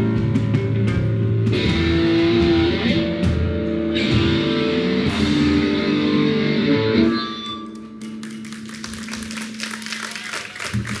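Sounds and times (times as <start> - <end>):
audience clapping: 7.6 - 11.0.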